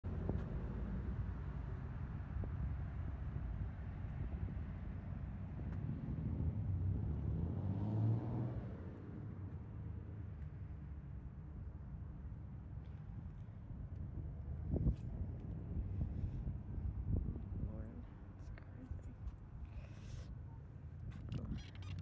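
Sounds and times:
road traffic rumble: 0.1 - 22.0.

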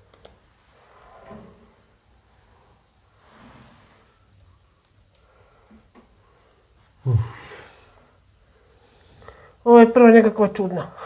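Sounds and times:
curtain fabric rustling: 0.0 - 4.8.

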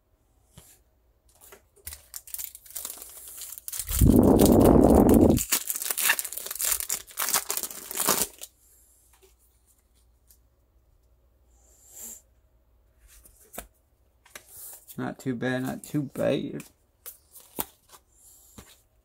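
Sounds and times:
foil wrapper crinkling: 1.8 - 8.5.

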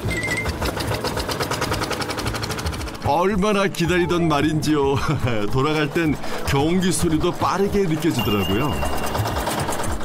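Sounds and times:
diesel tiller engine running: 0.0 - 10.0.

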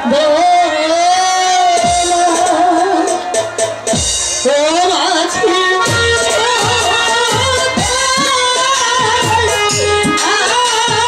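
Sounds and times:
live band accompaniment: 0.0 - 11.0
woman singing into a microphone: 0.0 - 11.0.

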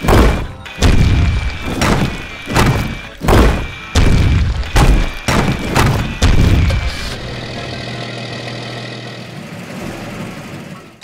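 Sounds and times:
excavator smashing brick wall: 0.0 - 7.9
background music: 0.0 - 8.0.

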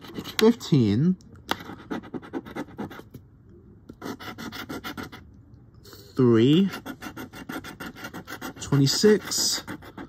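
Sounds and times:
coin scratching lottery ticket: 0.0 - 0.6, 4.0 - 5.2, 6.4 - 10.0.

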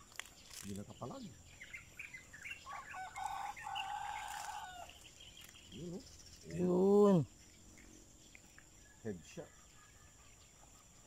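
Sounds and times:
rooster crowing: 2.6 - 5.0.

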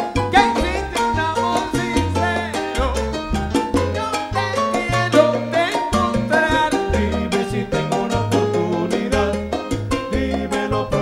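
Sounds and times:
salsa band playing: 0.0 - 11.0
steady percussion: 0.0 - 11.0
upright bass notes: 0.0 - 11.0.

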